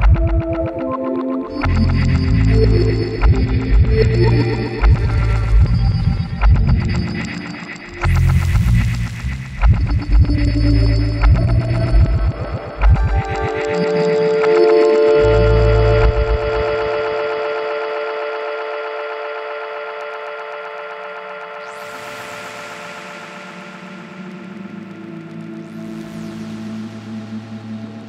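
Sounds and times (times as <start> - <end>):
low pulsing beats: 0.0 - 0.9, 1.5 - 18.0
dark glitch electronic music: 0.0 - 28.0.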